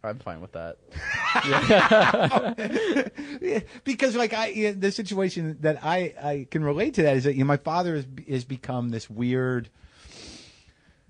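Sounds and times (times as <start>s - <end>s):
men laughing loudly: 0.9s - 3.7s.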